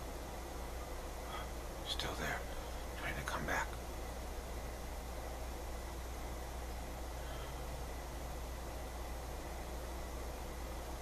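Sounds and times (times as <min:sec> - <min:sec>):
steady low hum: 0:00.0 - 0:11.0
man whispering: 0:01.3 - 0:03.8.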